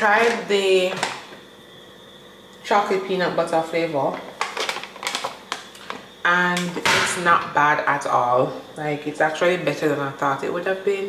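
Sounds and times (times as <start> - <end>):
plastic sachet crinkling: 4.2 - 6.0.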